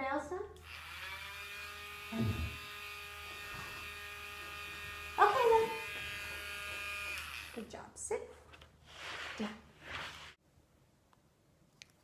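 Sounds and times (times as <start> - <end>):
rotary nail grinder whine: 0.6 - 7.7.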